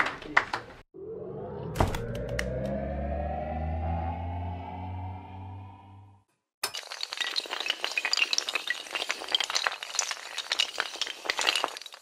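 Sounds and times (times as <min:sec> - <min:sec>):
small hard pieces clattering: 0:06.6 - 0:12.0.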